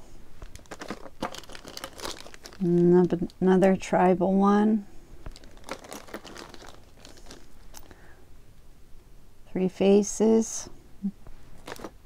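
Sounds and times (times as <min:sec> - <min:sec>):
plastic bag crinkling: 0:00.4 - 0:03.4, 0:05.2 - 0:08.0, 0:11.6 - 0:12.0.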